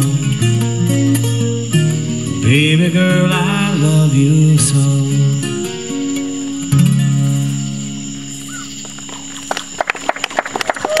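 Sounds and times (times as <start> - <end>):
acoustic guitar chord ringing: 0.0 - 9.8
audience clapping: 9.1 - 11.0.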